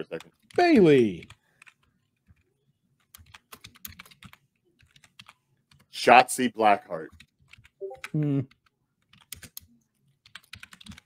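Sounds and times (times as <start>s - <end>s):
typing on computer keyboard: 1.2s - 2.4s, 3.0s - 5.9s, 7.1s - 7.8s, 8.5s - 11.0s.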